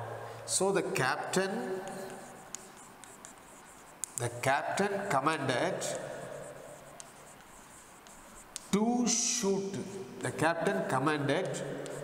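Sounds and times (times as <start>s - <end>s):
chalk scratching on chalkboard: 0.8s - 12.0s.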